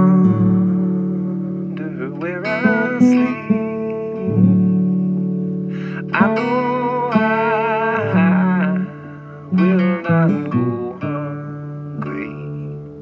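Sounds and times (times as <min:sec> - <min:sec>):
person singing: 0:00.0 - 0:05.0, 0:05.8 - 0:13.0
acoustic guitar strummed: 0:00.0 - 0:13.0.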